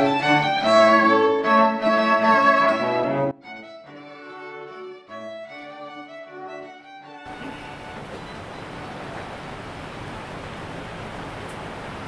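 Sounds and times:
steady background hiss: 7.3 - 12.0.

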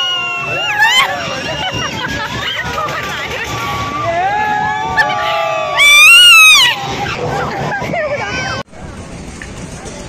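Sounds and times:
riders screaming and shouting: 0.0 - 8.6
loud high scream: 3.8 - 7.2.

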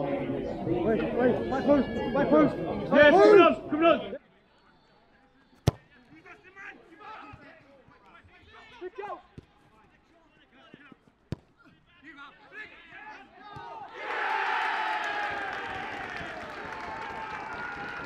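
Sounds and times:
crowd cheering: 13.4 - 18.0.

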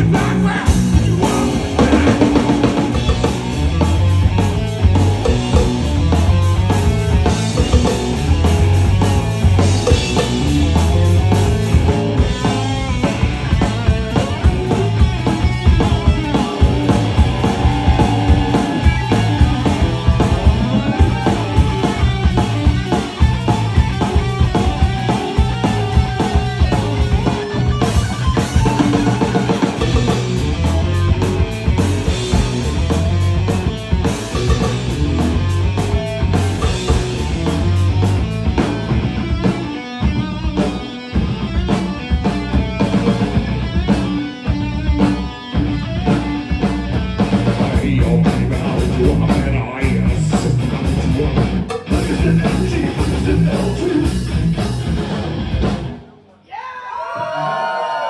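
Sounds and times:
heavy bass drum: 0.0 - 56.0
rock band playing live: 0.0 - 56.4.

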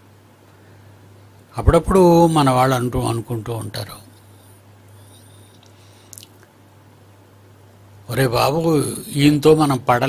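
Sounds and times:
low steady hum: 0.0 - 10.0
lip smack: 5.5 - 6.5.

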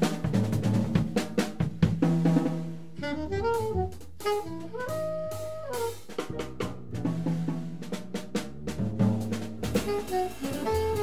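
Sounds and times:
double bass: 0.0 - 11.0
drum kit with cymbals: 0.0 - 11.0
alto saxophone melody: 3.0 - 6.7, 9.6 - 11.0.

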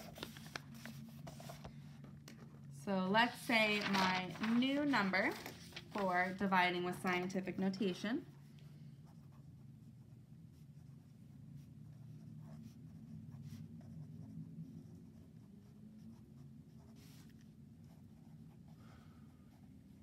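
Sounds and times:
low steady hum: 0.0 - 20.0
pen scratching on paper: 9.0 - 18.8.

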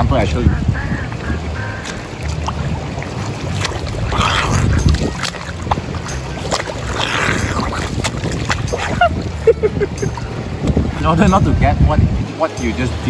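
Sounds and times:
pool water splashing: 0.0 - 11.5
wind rumble on microphone: 0.0 - 13.0.

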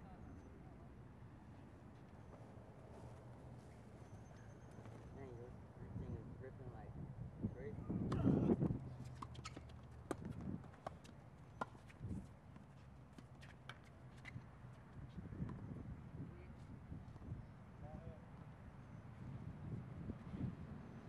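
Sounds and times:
tennis ball bounces: 9.0 - 12.0.

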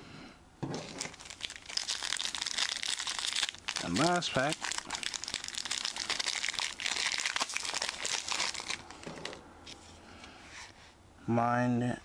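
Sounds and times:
foil wrapper crinkling: 0.8 - 9.4.

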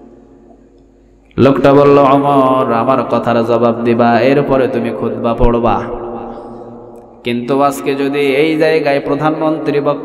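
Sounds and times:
man chanting into a microphone: 1.3 - 6.5, 7.2 - 10.0.

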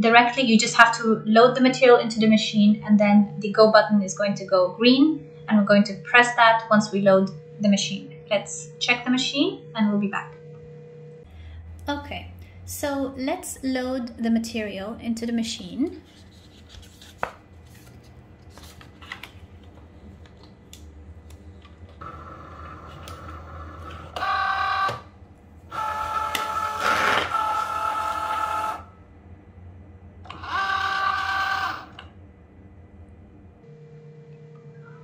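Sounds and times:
cutting machine motors whirring: 21.9 - 28.9, 30.2 - 32.1.

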